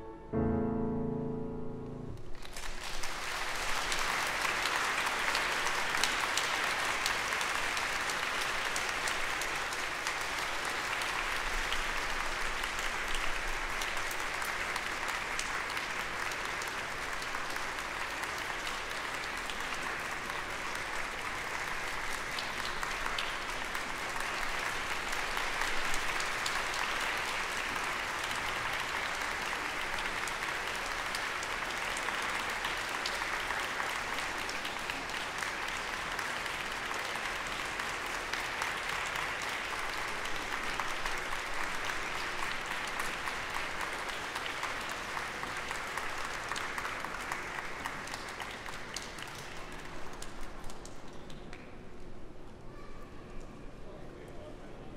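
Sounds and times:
audience applauding: 2.2 - 51.8.

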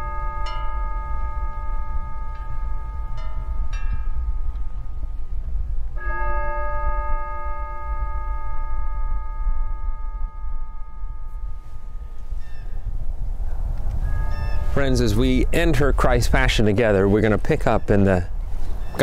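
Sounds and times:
chime bells ringing: 0.0 - 5.0
steady low rumble: 0.0 - 19.0.

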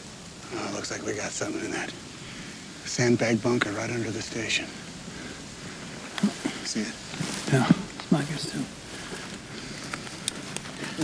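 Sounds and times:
outdoor field ambience: 0.0 - 11.0.

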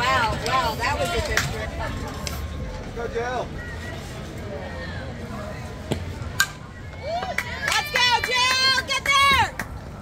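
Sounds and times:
spectators' voices: 0.0 - 10.0.

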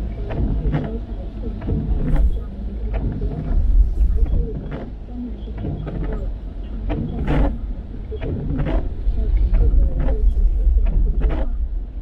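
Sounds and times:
low road rumble: 0.0 - 12.0.

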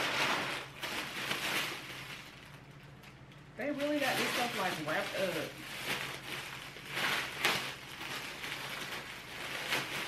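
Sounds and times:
packaging tearing and crinkling: 0.0 - 10.0.

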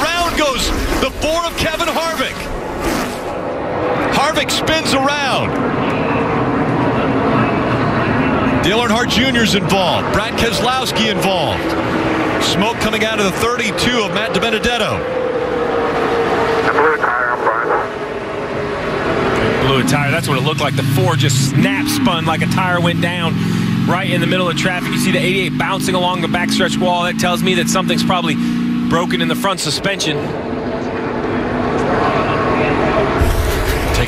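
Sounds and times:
race car engines at speed: 0.0 - 34.0.

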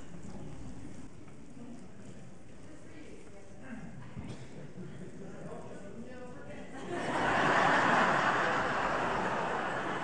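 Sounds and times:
hall room noise: 0.0 - 10.0.

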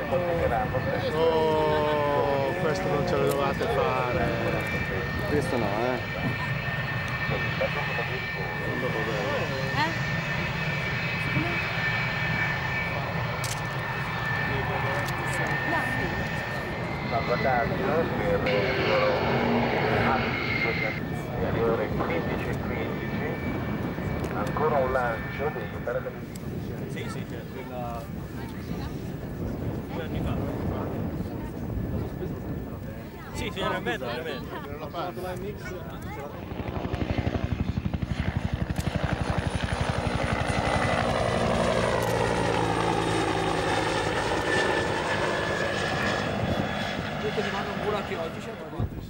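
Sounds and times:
people's voices: 0.0 - 10.1, 12.8 - 49.0
jet engine whine and rumble: 0.0 - 49.0.

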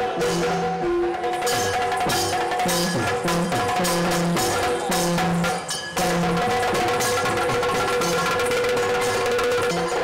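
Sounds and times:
rapid drumming: 0.0 - 10.0.

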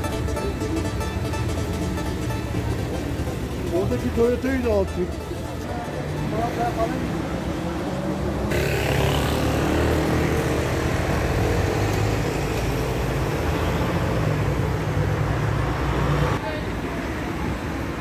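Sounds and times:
people's voices: 0.0 - 8.7
road traffic engines: 0.0 - 18.0.

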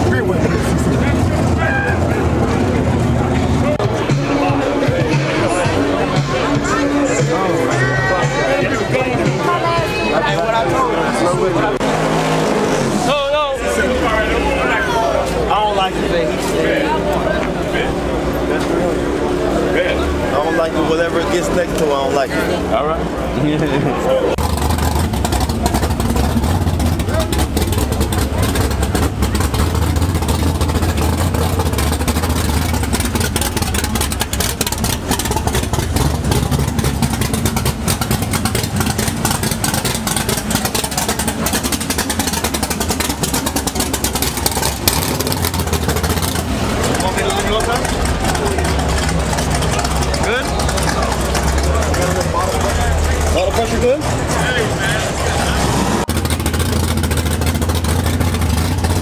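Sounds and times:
car engine idling: 0.0 - 59.0
crowd voices: 0.0 - 59.0.

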